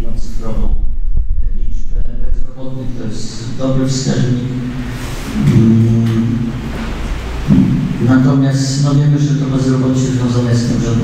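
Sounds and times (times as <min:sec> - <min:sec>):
man speaking in a large room: 0:00.0 - 0:11.0.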